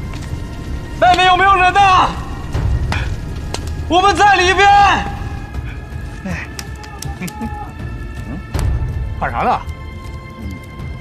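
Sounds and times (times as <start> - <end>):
low rumble: 0.0 - 6.3
man shouting: 6.7 - 7.8.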